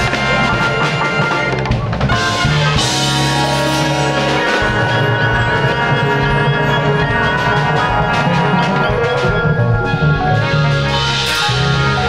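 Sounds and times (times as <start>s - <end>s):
drum kit with cymbals: 0.0s - 12.0s
keyboards: 0.0s - 12.0s
upright bass: 0.0s - 12.0s.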